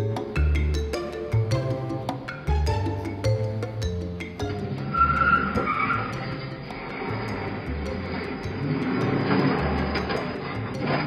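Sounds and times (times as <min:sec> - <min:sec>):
background music with steady beat: 0:00.0 - 0:11.0
truck tyres squealing: 0:04.8 - 0:11.0.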